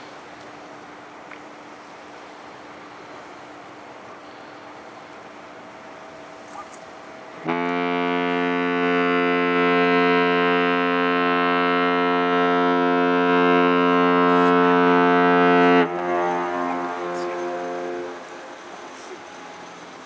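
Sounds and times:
ship's horn blast: 0:07.3 - 0:19.8
faint horn tone: 0:07.4 - 0:19.8.

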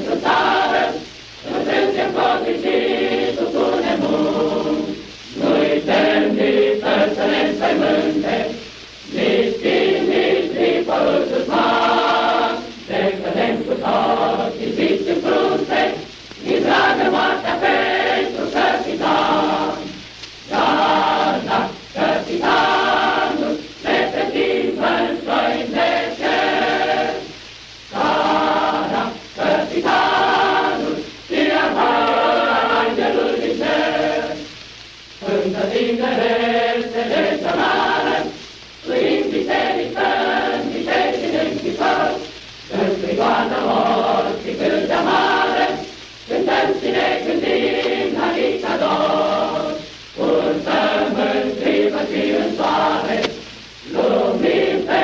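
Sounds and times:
choir singing: 0:00.0 - 0:34.6, 0:35.2 - 0:55.0.

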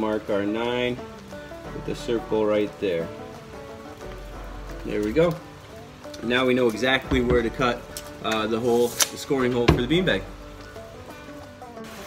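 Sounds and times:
faint music: 0:00.0 - 0:12.0
rain falling: 0:00.0 - 0:12.0.

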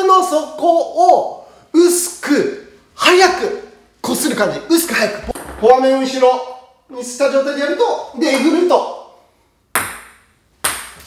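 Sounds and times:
table tennis ball bouncing: 0:05.2 - 0:06.2, 0:09.7 - 0:11.0.

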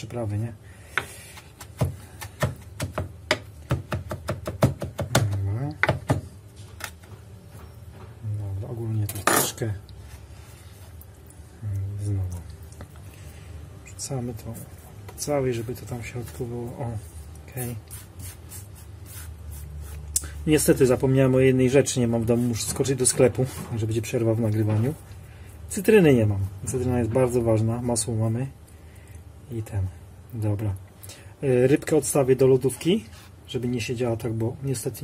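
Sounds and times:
knife chopping on wooden board: 0:00.9 - 0:06.3
steady low hum: 0:05.0 - 0:34.6
soft scratchy strokes: 0:14.2 - 0:21.0.

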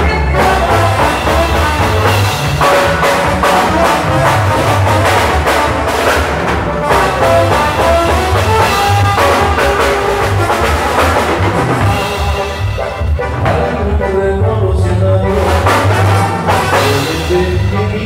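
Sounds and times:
brass band music: 0:00.0 - 0:18.0.

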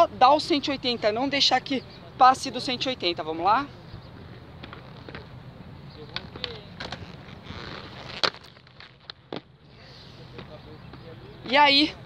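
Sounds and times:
inline skate wheels rolling on concrete: 0:04.2 - 0:12.0
skates clacking on concrete ledge: 0:06.0 - 0:07.4
skate grind scrape: 0:06.1 - 0:10.4.

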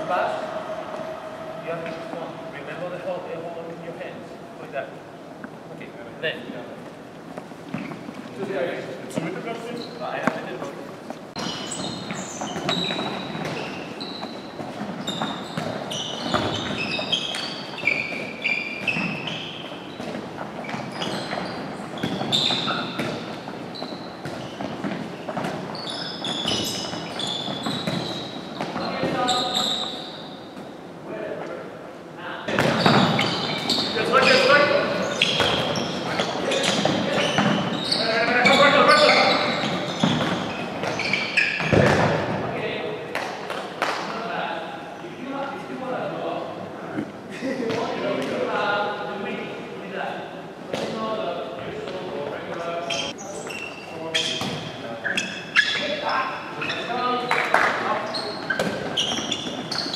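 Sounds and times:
sports shoes squeaking: 0:06.2 - 0:30.8, 0:32.5 - 0:42.8, 0:51.7 - 0:59.9
balls bouncing on wooden floor: 0:11.4 - 0:17.5, 0:18.1 - 0:29.2, 0:32.5 - 0:33.9, 0:35.2 - 0:37.8, 0:39.4 - 0:42.4.

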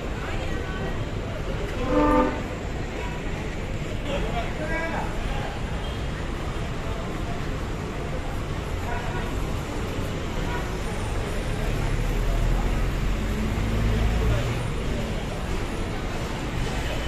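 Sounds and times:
minibus engine rumble: 0:00.0 - 0:17.0
people's voices: 0:00.0 - 0:17.0
street traffic: 0:00.0 - 0:17.0.

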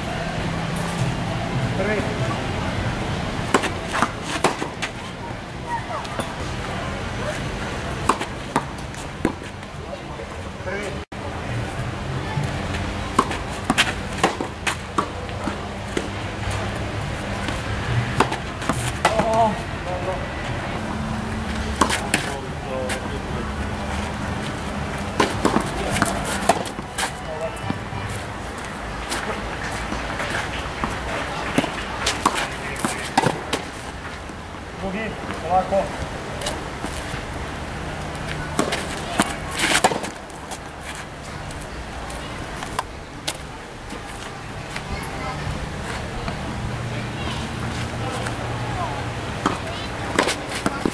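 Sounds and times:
tennis balls struck by rackets: 0:03.4 - 0:05.2, 0:07.2 - 0:09.7, 0:12.3 - 0:20.2, 0:20.8 - 0:37.4, 0:38.0 - 0:50.9.

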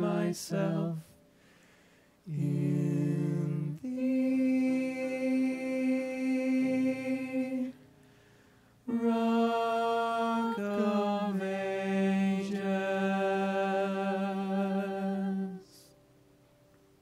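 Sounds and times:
vocal quartet singing a cappella: 0:00.0 - 0:16.0.

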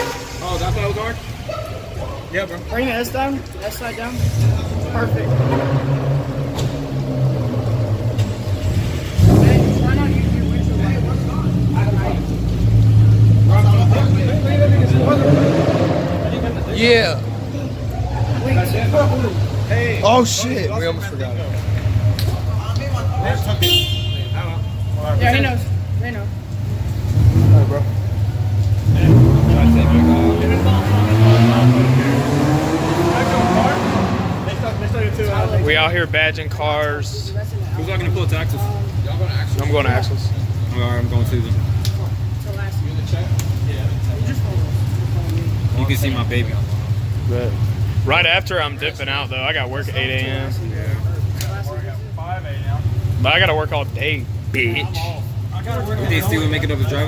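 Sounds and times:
car engine idling: 0:00.0 - 0:15.2, 0:32.1 - 0:57.0
people talking: 0:00.0 - 0:57.0
louder engine rumble: 0:04.0 - 0:57.0.

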